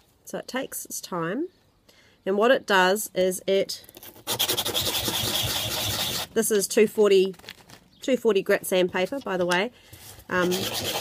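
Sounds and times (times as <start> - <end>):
sanding on sandpaper: 4.2 - 6.3, 10.3 - 11.0.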